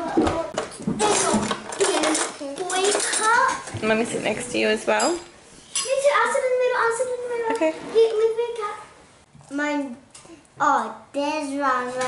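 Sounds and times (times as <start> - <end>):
small children chattering and squealing: 0.0 - 3.7, 5.7 - 8.9
crockery and cutlery clinking: 0.3 - 6.4.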